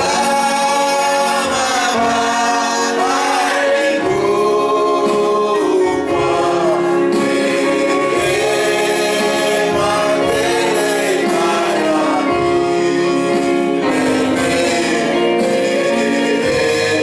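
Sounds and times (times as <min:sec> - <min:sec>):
men singing a gospel hymn: 0:00.0 - 0:17.0.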